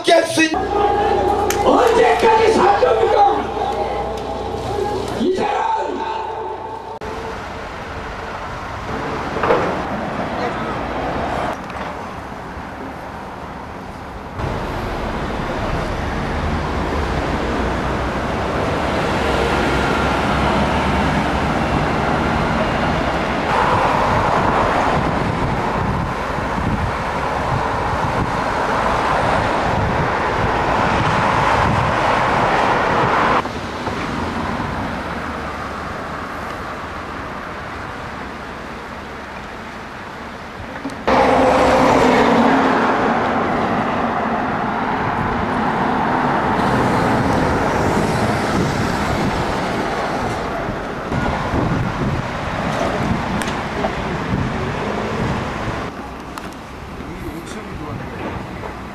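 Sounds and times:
cars driving past: 0.6 - 58.9.

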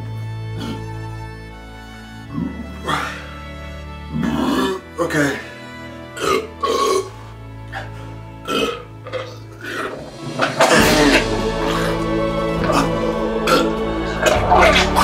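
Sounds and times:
background music: 0.0 - 15.0
man belching and retching: 6.2 - 7.1, 7.8 - 12.0, 12.6 - 15.0.

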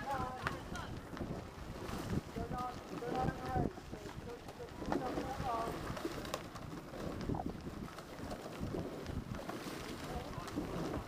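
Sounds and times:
bicycle rattling on gravel: 0.0 - 11.0
wind buffeting microphone: 0.0 - 11.0.

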